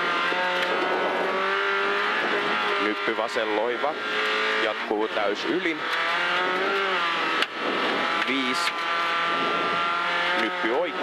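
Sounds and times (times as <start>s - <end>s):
car engine at high revs: 0.0s - 11.0s.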